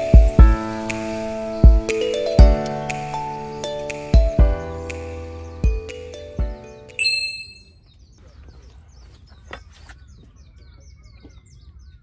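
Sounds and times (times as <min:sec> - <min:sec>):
bright chime ringing: 0:06.1 - 0:07.8.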